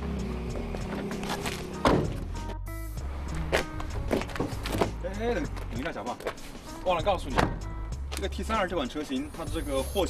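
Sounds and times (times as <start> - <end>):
background music: 0.0 - 10.0
truck door shutting: 0.9 - 2.6, 7.3 - 7.7.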